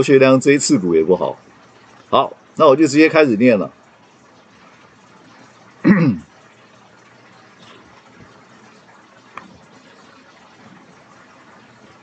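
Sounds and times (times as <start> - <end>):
room noise hiss: 0.0 - 12.0
man clearing his throat: 5.8 - 6.3.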